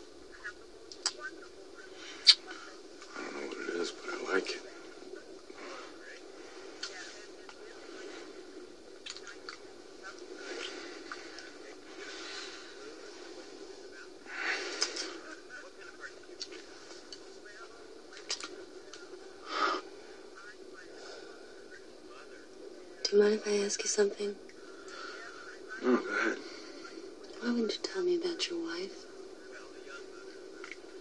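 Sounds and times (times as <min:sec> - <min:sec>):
soft breaths and murmurs: 0:00.0 - 0:31.0
steady hum: 0:00.0 - 0:31.0.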